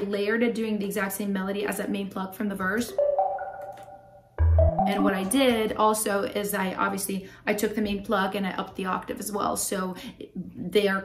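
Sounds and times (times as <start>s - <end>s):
synth pluck and organ melody: 2.9s - 5.5s.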